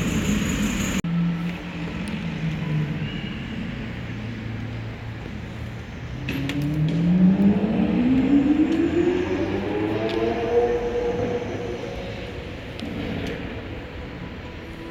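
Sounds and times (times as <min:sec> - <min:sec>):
car engine accelerating: 0:05.9 - 0:13.7.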